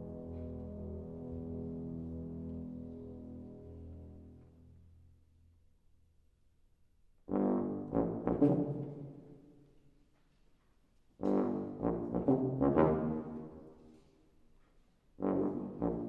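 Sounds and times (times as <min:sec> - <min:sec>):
brass chord: 0:00.0 - 0:04.9, 0:07.3 - 0:09.1, 0:11.2 - 0:13.7, 0:15.2 - 0:16.0.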